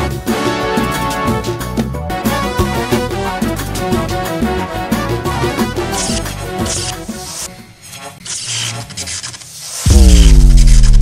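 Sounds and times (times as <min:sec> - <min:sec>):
crackling scratchy noise: 0:08.2 - 0:11.0
deep bass hit sinking in pitch: 0:09.9 - 0:11.0.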